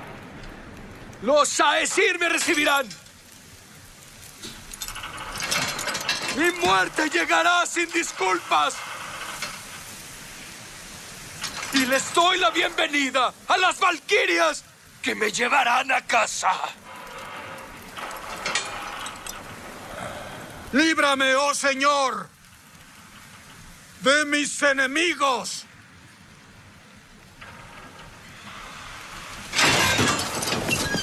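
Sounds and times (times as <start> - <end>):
metal mechanism clicking rattling: 4.2 - 10.2, 11.4 - 12.8, 16.8 - 19.8, 29.4 - 31.0.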